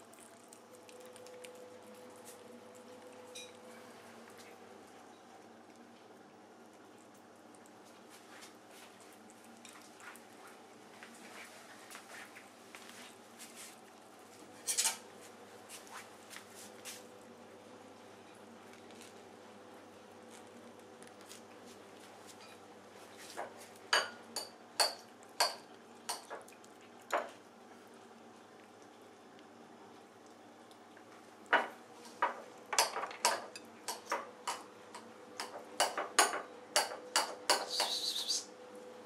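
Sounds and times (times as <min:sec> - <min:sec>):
cat chewing melon: 0:00.0 - 0:12.0, 0:18.5 - 0:23.8, 0:25.0 - 0:32.2.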